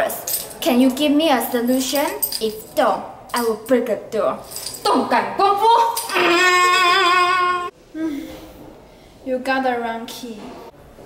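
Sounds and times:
girl yelling: 0:05.6 - 0:07.7.

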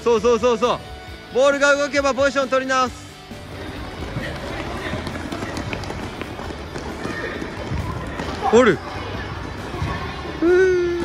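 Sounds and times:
running footsteps: 0:03.2 - 0:10.5.

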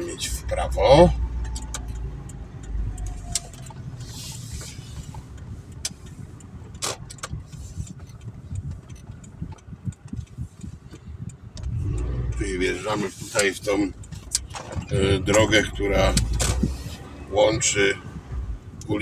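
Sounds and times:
car engine: 0:00.0 - 0:19.0
road rumble: 0:00.0 - 0:19.0
small clicks and rattles in cabin: 0:00.0 - 0:19.0.

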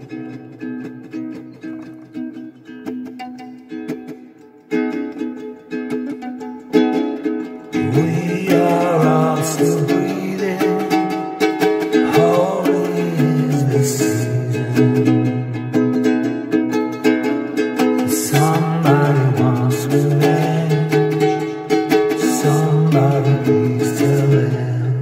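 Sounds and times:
ukulele strumming: 0:00.0 - 0:25.0
man singing: 0:07.7 - 0:15.8, 0:18.0 - 0:25.0.

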